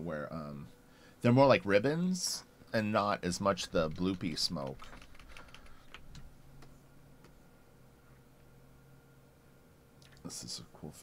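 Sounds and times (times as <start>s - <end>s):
computer keys clicking: 3.9s - 6.7s.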